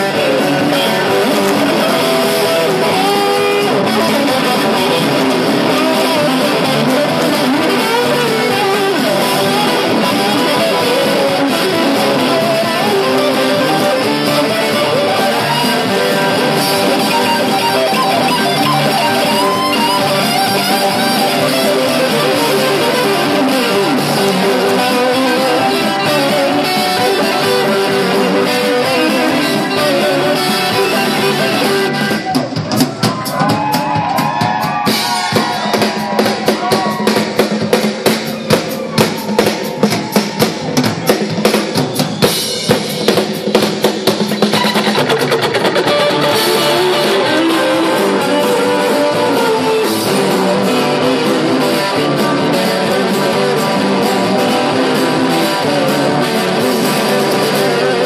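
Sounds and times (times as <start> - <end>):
sliding guitar notes: 0.0 - 32.4, 44.5 - 58.0
live rock band playing: 0.0 - 58.0.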